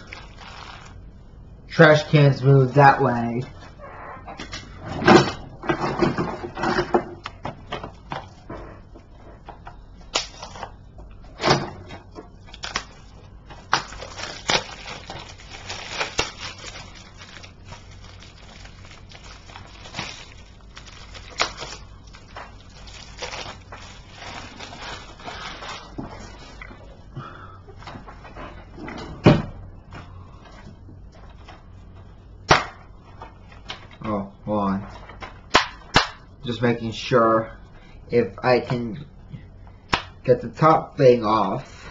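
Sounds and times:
plastic packaging crinkling: 0.0s - 1.0s, 12.4s - 27.0s.

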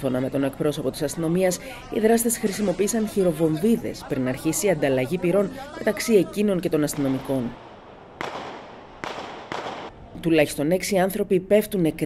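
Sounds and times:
gunshots with echo: 6.9s - 10.0s.

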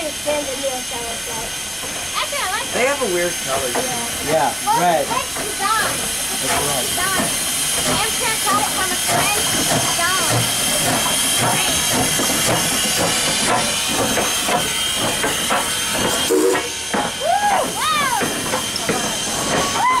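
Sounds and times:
steam locomotive hissing: 0.0s - 20.0s
engine knocks: 5.1s - 20.0s.

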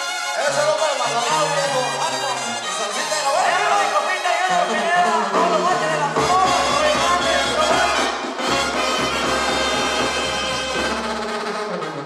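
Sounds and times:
live band dance music with brass: 0.0s - 12.0s
deep bass line: 4.6s - 11.2s.

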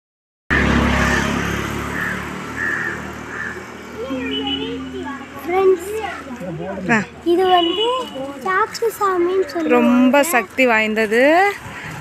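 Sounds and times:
people talking: 3.9s - 11.6s.

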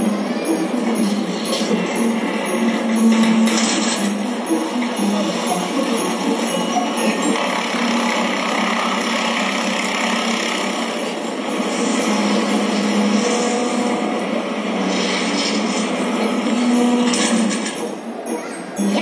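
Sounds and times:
music over speakers: 0.0s - 7.4s, 16.1s - 19.0s
noisy vehicle-like sound effect: 0.0s - 18.1s.

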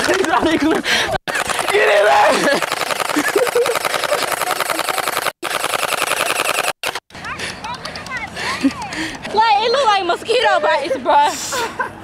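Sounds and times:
gel ball blaster rapid firing: 1.3s - 7.1s
voices shouting: 1.6s - 2.5s.

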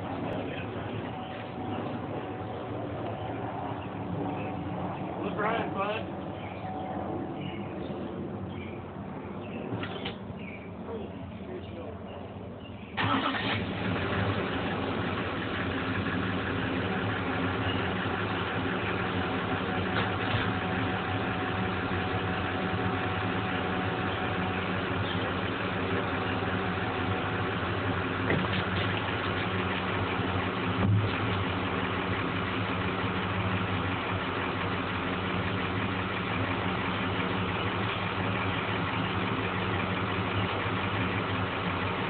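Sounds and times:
engine idling: 0.0s - 9.0s, 12.9s - 42.0s.

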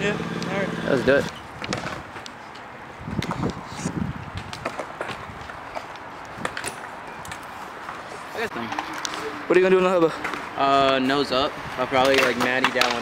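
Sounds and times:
bike tyres rolling on concrete: 1.4s - 13.0s
clicks and knocks from bike: 4.4s - 8.0s, 12.0s - 13.0s.

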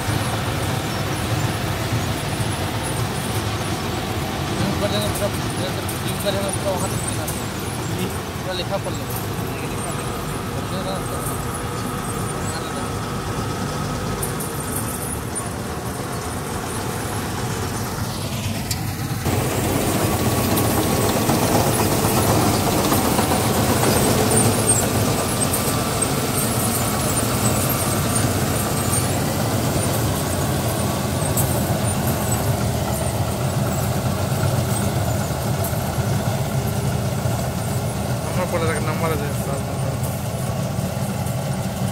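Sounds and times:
combine harvester engine and threshing: 0.0s - 41.9s.

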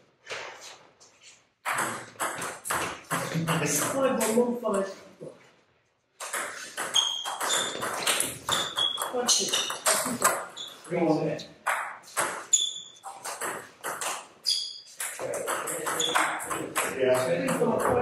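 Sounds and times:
table tennis ball hits: 1.6s - 4.4s, 6.2s - 10.9s, 11.6s - 18.0s.

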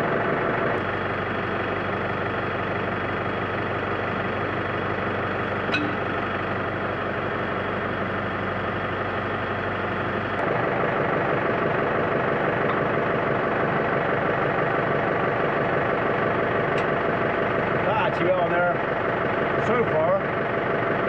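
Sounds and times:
tractor engine idling: 0.0s - 21.0s.

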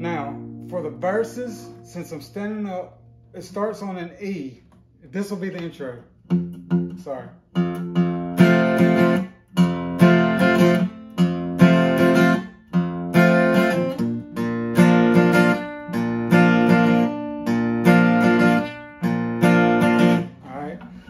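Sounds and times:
acoustic guitar strumming: 0.0s - 21.0s.

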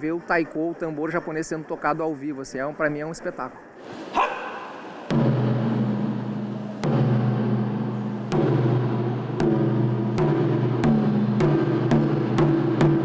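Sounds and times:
taiko drums booming: 5.0s - 13.0s.

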